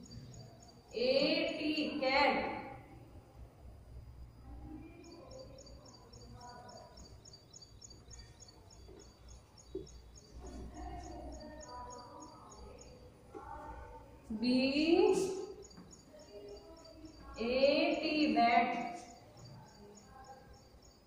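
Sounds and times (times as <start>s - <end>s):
small bird chirping: 0.0s - 1.6s, 4.4s - 21.0s
distant voices: 0.0s - 21.0s.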